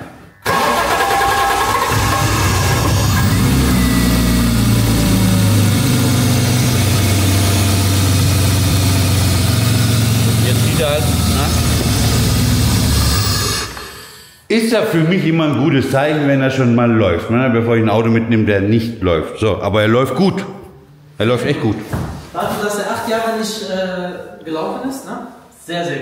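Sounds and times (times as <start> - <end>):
car engine starting: 0.4 - 14.1
engine idling: 0.4 - 14.1.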